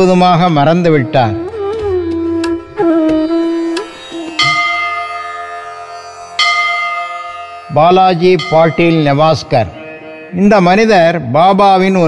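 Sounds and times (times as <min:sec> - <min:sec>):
bell ringing: 0:04.2 - 0:12.0.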